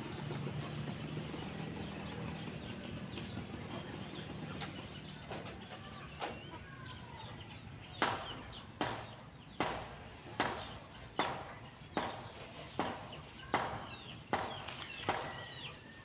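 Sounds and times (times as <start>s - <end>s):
birds chirping: 0.0s - 16.0s
rake scraping rice on concrete: 11.8s - 13.5s.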